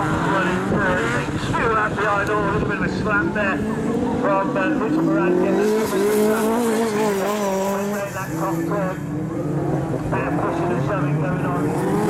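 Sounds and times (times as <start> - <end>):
race car engine at full throttle: 0.0 - 12.0.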